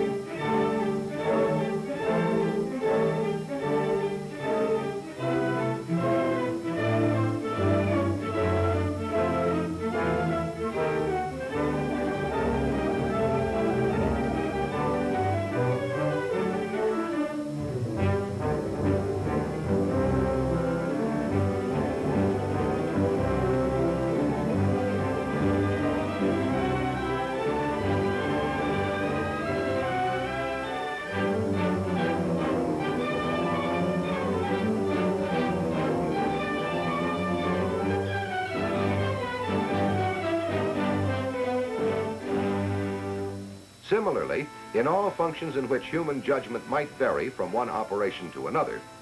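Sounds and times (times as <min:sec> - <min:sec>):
orchestral music with bowed strings: 0:00.0 - 0:49.0.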